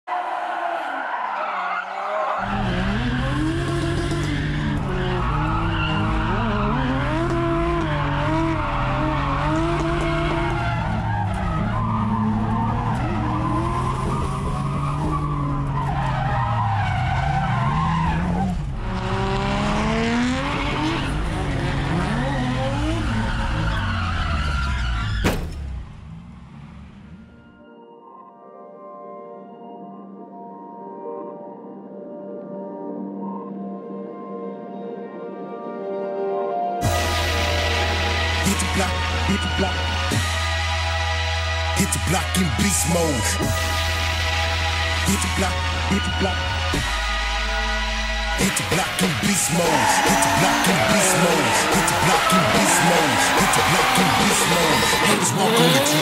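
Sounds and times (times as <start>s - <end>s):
car engine revving hard: 2.4s - 15.8s, 17.1s - 23.7s, 48.4s - 56.0s
tyres squealing: 49.2s - 56.0s.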